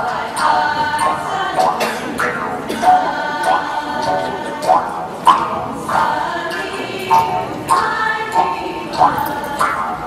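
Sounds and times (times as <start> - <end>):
group singing: 0.0 - 10.0.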